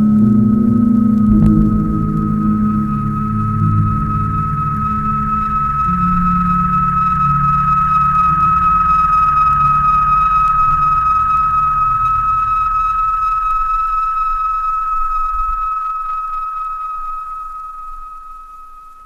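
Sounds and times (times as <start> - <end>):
high sustained tone: 0.0 - 19.0
low drone: 0.0 - 19.0.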